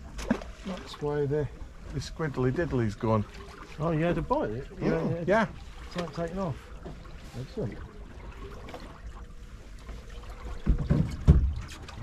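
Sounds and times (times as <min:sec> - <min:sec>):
water lapping against boat hull: 0:00.0 - 0:12.0.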